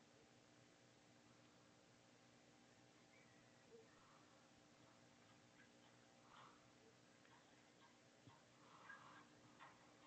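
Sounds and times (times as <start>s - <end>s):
faint ticks: 4.8s - 10.0s.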